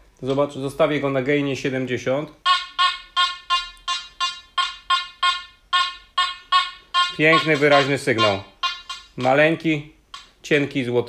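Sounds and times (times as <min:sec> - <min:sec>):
metal detector beeps: 0:02.5 - 0:09.6.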